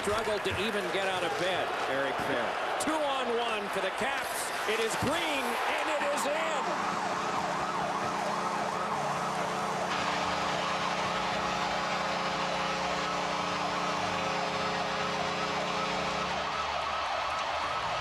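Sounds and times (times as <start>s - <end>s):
crowd cheering: 0.0s - 18.0s.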